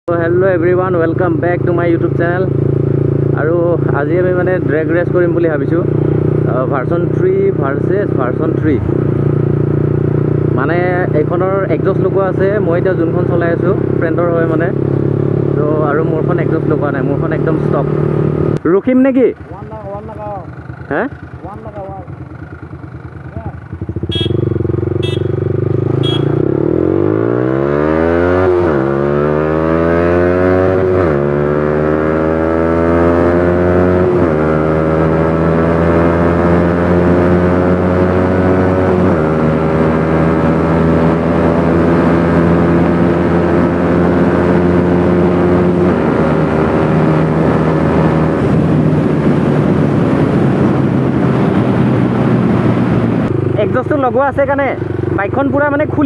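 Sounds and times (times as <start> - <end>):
motorcycle engine revving through gears: 0.2 - 18.7, 19.3 - 56.0
short high beeps: 26.0 - 26.4.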